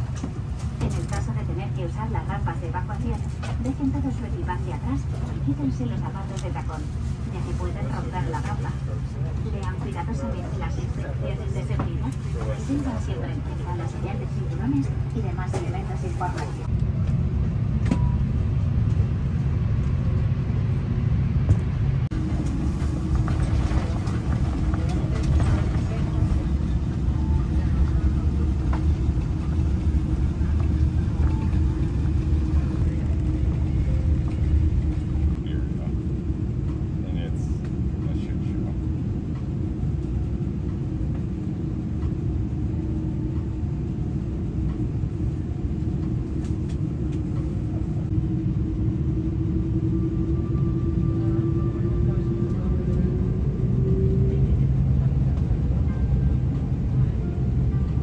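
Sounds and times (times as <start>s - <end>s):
airliner cabin engine hum: 0.0s - 58.0s.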